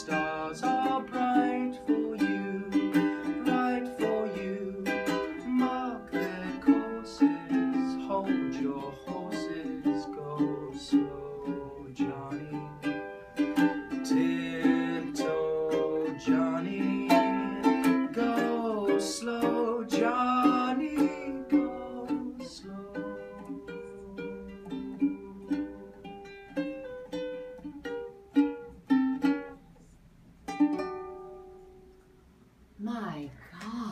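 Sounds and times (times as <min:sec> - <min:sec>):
man singing: 0:00.0 - 0:26.3
ukulele strumming: 0:00.0 - 0:32.3.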